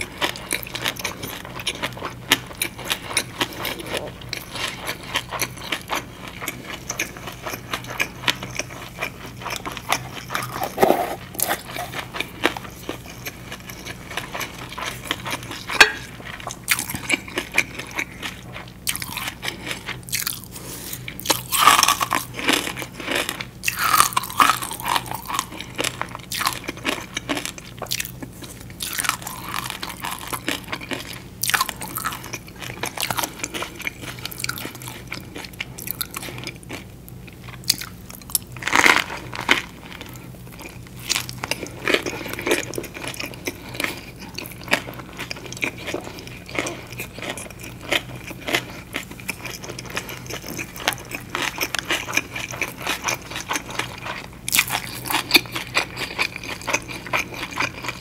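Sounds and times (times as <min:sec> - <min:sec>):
biting and chewing food: 0:00.0 - 0:58.0.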